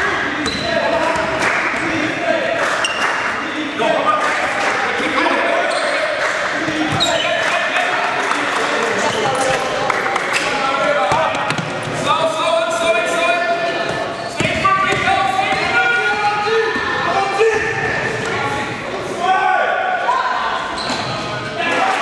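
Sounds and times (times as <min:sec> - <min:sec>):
players shouting: 0:00.0 - 0:20.8.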